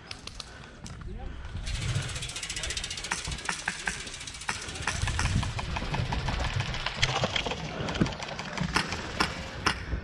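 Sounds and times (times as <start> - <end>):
airsoft guns firing: 3.0 - 10.0.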